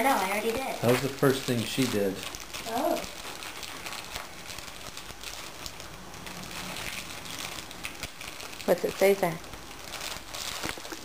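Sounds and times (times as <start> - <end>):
paper and wrappers crinkling: 0.0 - 11.0.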